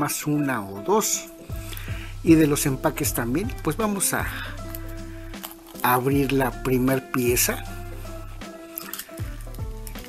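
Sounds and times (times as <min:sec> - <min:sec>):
background music: 0:00.0 - 0:10.0
foil wrapper crinkling: 0:04.4 - 0:06.2.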